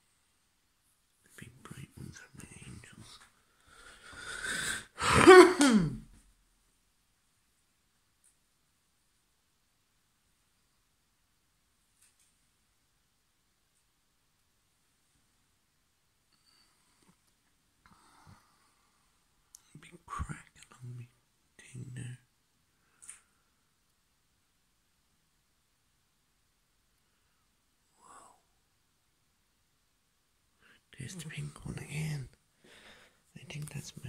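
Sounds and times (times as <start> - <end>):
person whispering: 1.2 - 3.4, 19.6 - 22.3, 28.0 - 28.5, 30.6 - 32.4, 33.3 - 34.0
person inhaling: 3.5 - 5.1, 32.6 - 33.2.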